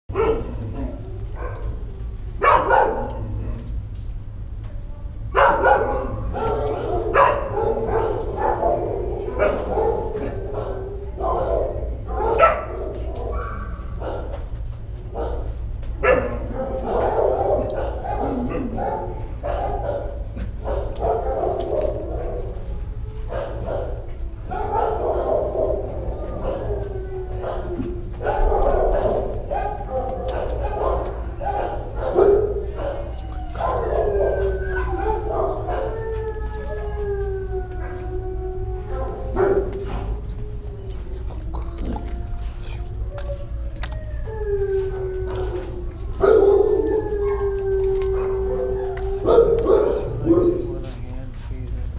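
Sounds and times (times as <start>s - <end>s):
dog barking: 0.1s - 0.8s, 2.4s - 3.4s, 5.3s - 14.4s, 15.1s - 22.0s, 23.3s - 26.8s, 27.4s - 36.0s, 38.8s - 40.1s, 46.2s - 47.4s, 49.2s - 51.0s
steady low hum: 0.1s - 51.9s.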